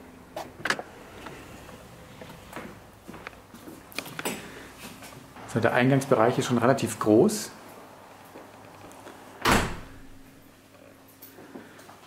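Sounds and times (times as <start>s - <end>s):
door shutting with a thud: 9.4s - 10.2s.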